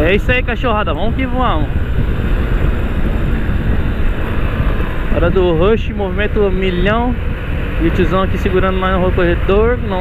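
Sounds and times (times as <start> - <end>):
motorcycle engine running: 0.0 - 10.0
wind rushing on microphone: 0.0 - 10.0.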